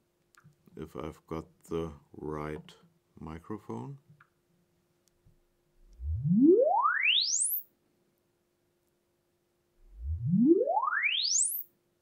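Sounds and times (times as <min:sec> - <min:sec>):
rising sine sweep tone: 0:05.8 - 0:07.6, 0:09.8 - 0:11.6.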